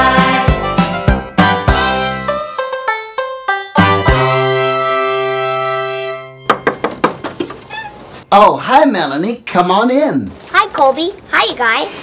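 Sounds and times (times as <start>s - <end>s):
knocks on wooden door: 6.5s - 7.6s.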